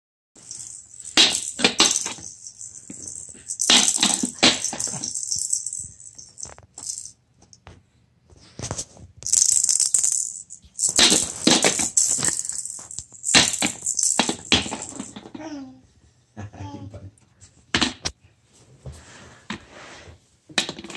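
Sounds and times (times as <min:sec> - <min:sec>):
shaken rattle: 0:00.4 - 0:07.2, 0:09.2 - 0:15.2.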